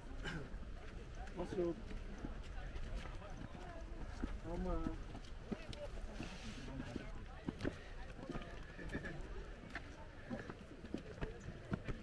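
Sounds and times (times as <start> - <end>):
footsteps on stone steps: 0.0 - 12.0.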